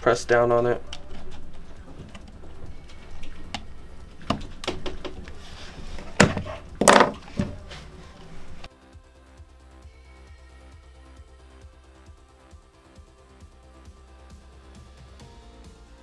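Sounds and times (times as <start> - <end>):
faint background music: 0.0 - 16.0.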